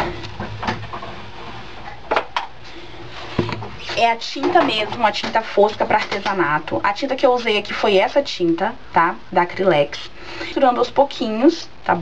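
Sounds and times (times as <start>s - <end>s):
low steady hum: 0.0s - 12.0s
plastic containers knocking: 3.4s - 3.8s.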